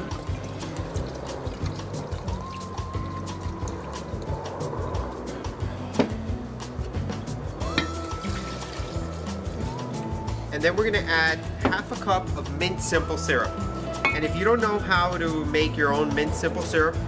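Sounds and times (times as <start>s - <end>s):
liquid trickling into glass cup: 0.0s - 5.4s, 7.6s - 9.8s
background music: 0.0s - 17.0s.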